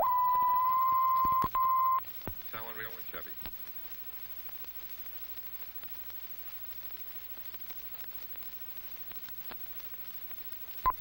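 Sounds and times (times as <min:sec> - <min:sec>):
steady test tone: 0:00.0 - 0:02.0
faint film crackle: 0:00.0 - 0:11.0.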